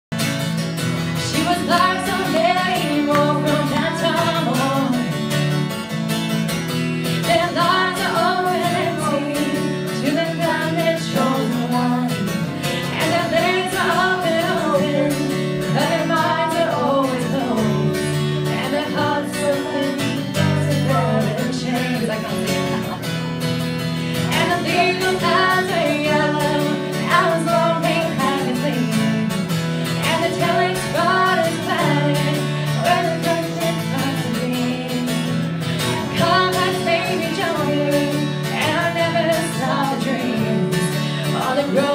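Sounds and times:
guitar strumming: 0.1s - 41.9s
person singing: 1.2s - 5.4s, 7.2s - 23.0s, 24.1s - 41.9s.

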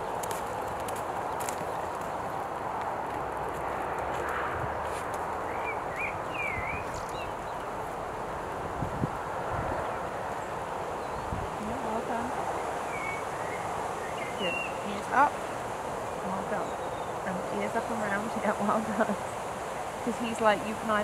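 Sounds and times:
horse hoofbeats trotting: 0.0s - 7.9s
wind on microphone: 0.0s - 21.0s
bird chirps: 5.5s - 7.7s, 12.6s - 19.4s.

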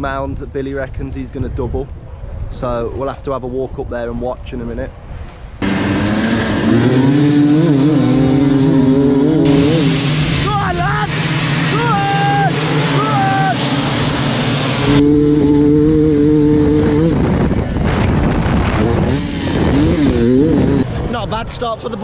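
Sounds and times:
dirt bike engines revving: 5.6s - 22.0s.

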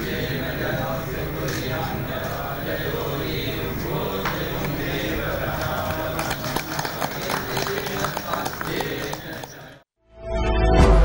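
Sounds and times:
background hum: 0.0s - 9.8s
people clapping: 0.0s - 9.8s.

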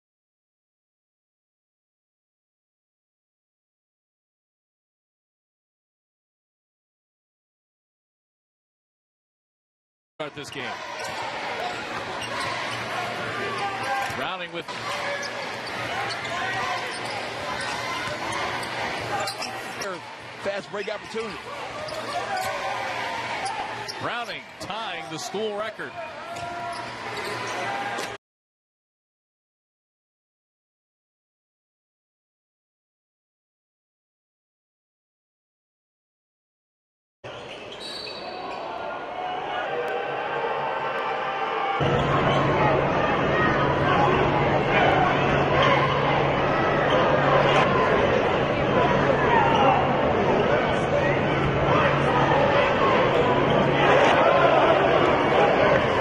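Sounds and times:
crowd murmur: 10.5s - 28.2s, 38.4s - 56.0s.

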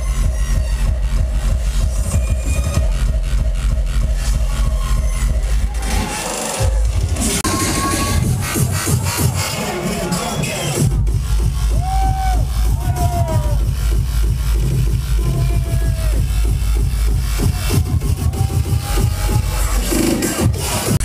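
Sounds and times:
fast kick-drum beat: 0.0s - 9.7s, 10.8s - 21.0s
heavy bass: 0.0s - 21.0s.

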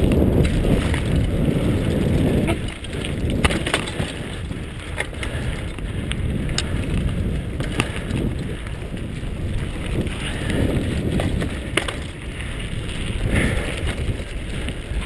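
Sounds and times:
bike clicks and rattles: 0.0s - 15.0s
wind rumbling on microphone: 0.0s - 15.0s.

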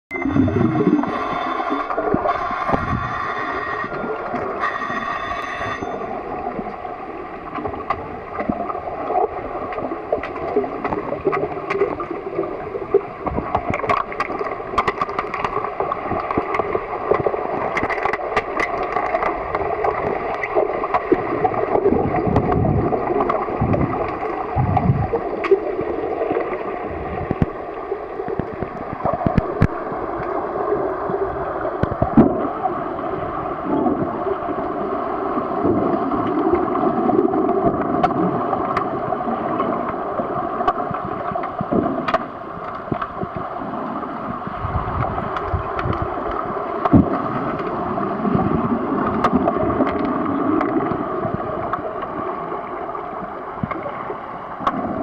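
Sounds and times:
muffled underwater rush of water: 0.1s - 55.0s.

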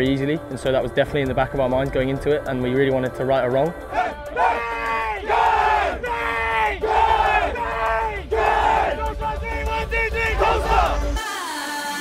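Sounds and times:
men shouting in unison: 3.9s - 11.1s.

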